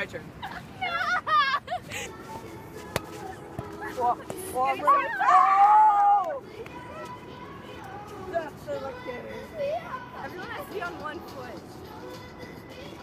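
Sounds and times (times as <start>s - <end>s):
young people calling out: 3.8s - 6.4s.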